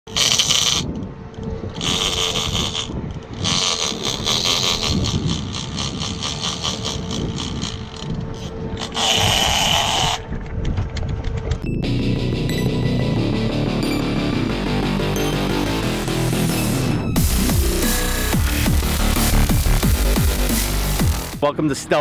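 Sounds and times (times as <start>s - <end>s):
rapid reel ticking: 0.1s - 0.9s, 1.7s - 10.3s
fishing reel drag buzzing: 0.1s - 1.0s, 1.7s - 10.4s.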